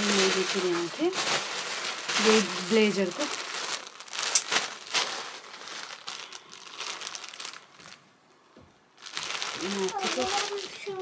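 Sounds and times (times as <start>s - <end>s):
plastic bag crinkling: 0.0s - 8.0s, 9.0s - 11.0s.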